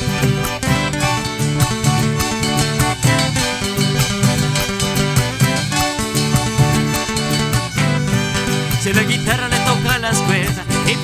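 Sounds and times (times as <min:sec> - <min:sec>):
accordion: 0:00.0 - 0:11.0
acoustic guitar: 0:00.0 - 0:11.0
bass: 0:00.0 - 0:11.0
violin: 0:00.0 - 0:11.0.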